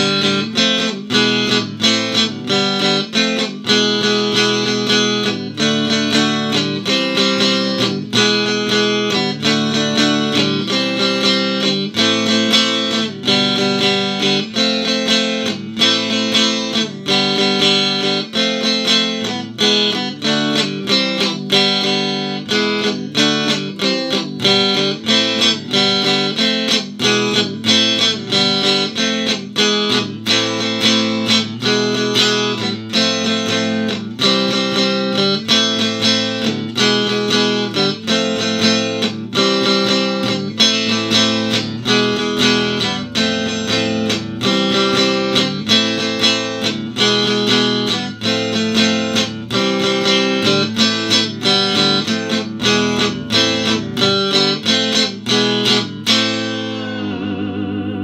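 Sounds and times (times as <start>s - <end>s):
electric guitar playing chords: 0.0s - 58.0s.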